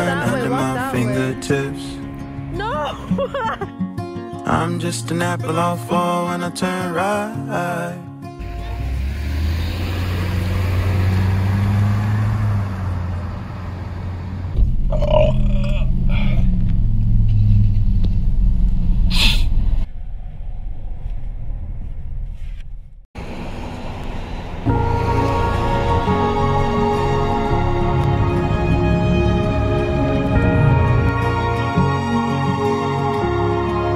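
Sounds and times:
car cabin road rumble: 0:08.4 - 0:31.2
low outdoor rumble: 0:11.5 - 0:31.6.

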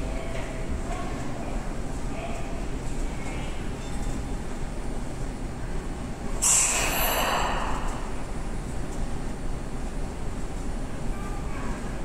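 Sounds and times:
sharp hiss of released air: 0:06.4 - 0:08.1.

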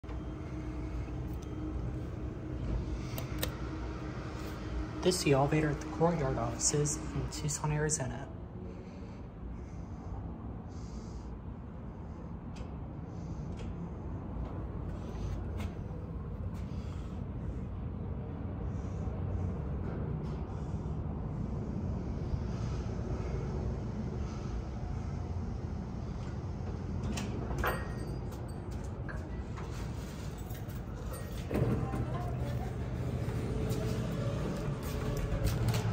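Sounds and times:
faint hum: 0:00.0 - 0:35.9
steady low rumble: 0:00.0 - 0:35.9.

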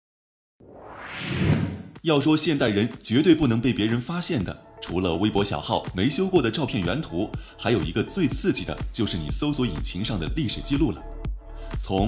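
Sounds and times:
whoosh sound effect: 0:00.6 - 0:02.0.

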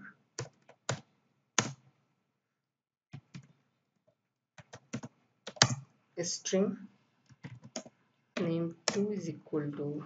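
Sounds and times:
keystrokes on computer keyboard: 0:00.4 - 0:01.9, 0:03.1 - 0:03.6, 0:04.6 - 0:05.9, 0:07.3 - 0:09.1.

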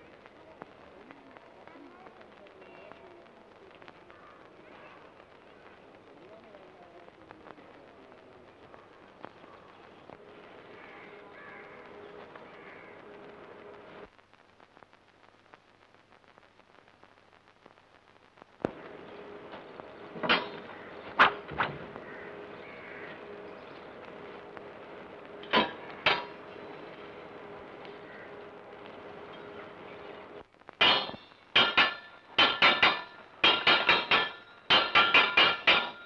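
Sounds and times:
film soundtrack hiss and hum: 0:00.0 - 0:36.0.

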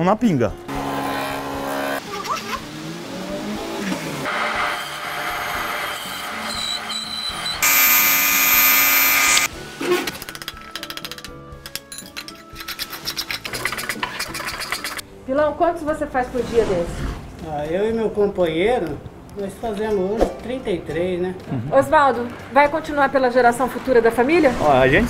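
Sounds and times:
background music: 0:00.0 - 0:06.8, 0:09.5 - 0:25.0.

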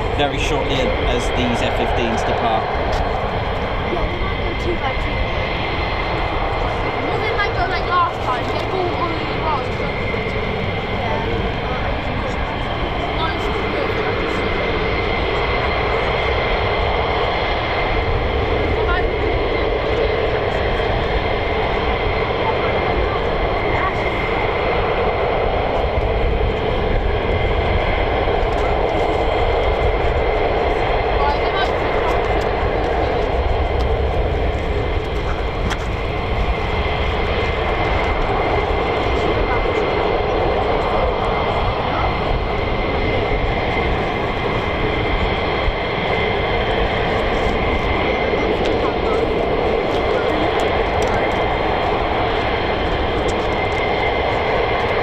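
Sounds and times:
jet engines idling: 0:00.0 - 0:55.0.

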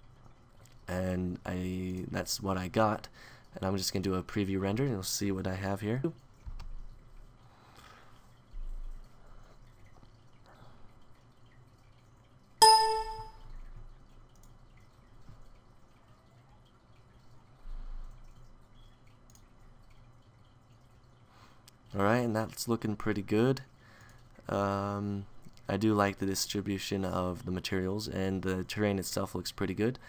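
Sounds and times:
faint steady hum: 0:00.0 - 0:30.0
computer alert chime: 0:12.6 - 0:13.5.

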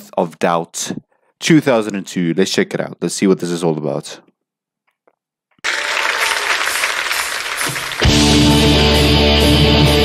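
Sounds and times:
audience applauding: 0:05.6 - 0:08.9.

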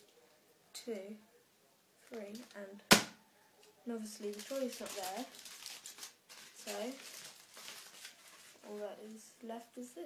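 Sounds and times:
aluminium foil crinkling: 0:02.0 - 0:02.7, 0:04.0 - 0:09.2.

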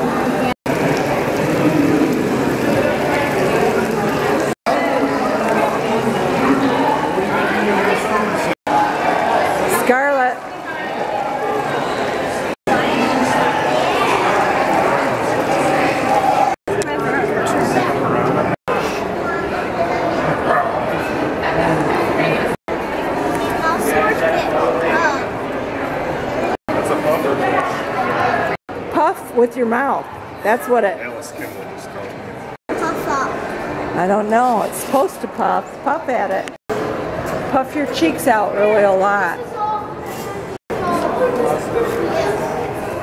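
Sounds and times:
babble of many voices: 0:00.0 - 0:43.0
people chattering: 0:00.0 - 0:43.0.

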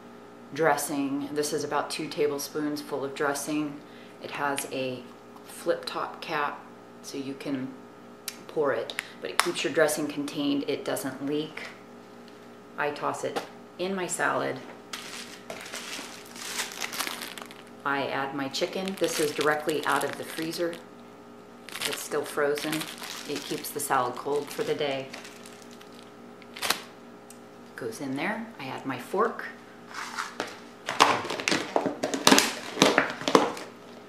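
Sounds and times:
plastic bag crinkling: 0:14.9 - 0:20.9, 0:21.6 - 0:27.0.

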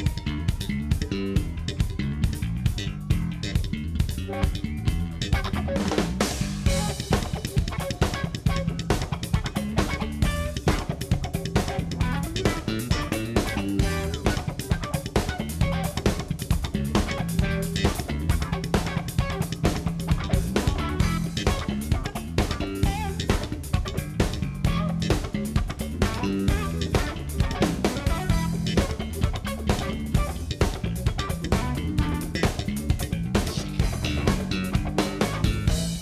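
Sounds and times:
drum kit beat: 0:00.0 - 0:36.0
electric bass guitar solo: 0:00.0 - 0:36.0.

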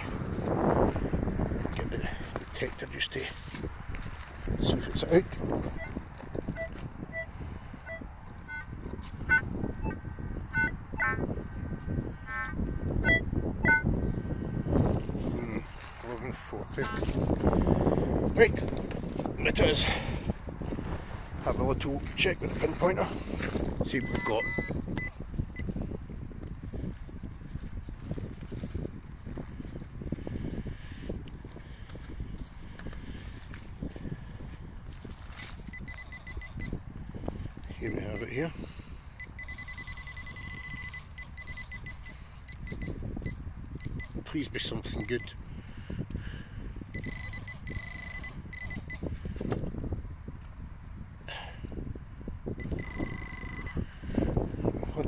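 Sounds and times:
scraping and crackling in soil: 0:00.0 - 0:06.9, 0:14.8 - 0:17.5, 0:35.0 - 0:35.8
short high beeps: 0:05.8 - 0:07.3, 0:07.9 - 0:08.7, 0:13.0 - 0:13.9, 0:24.0 - 0:25.7, 0:35.7 - 0:36.8, 0:39.2 - 0:44.2, 0:44.9 - 0:45.4, 0:46.9 - 0:49.0, 0:52.6 - 0:53.8
high electronic alert tone: 0:24.0 - 0:24.7, 0:35.8 - 0:36.7, 0:39.2 - 0:42.9, 0:47.0 - 0:49.0, 0:52.6 - 0:53.7.

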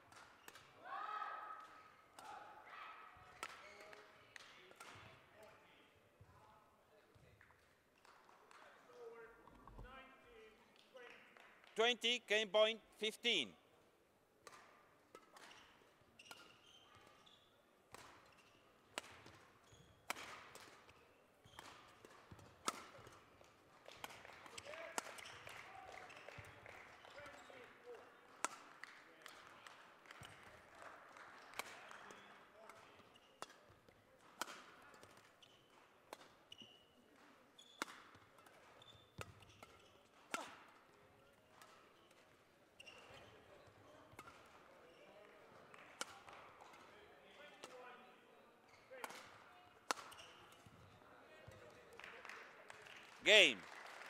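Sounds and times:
rackets hitting shuttlecock: 0:17.9 - 0:19.4, 0:20.0 - 0:20.9, 0:37.8 - 0:40.8.

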